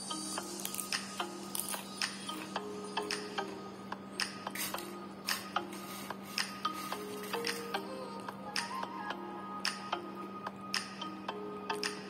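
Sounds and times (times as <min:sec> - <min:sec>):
chips crunching while chewed: 0:00.5 - 0:02.6.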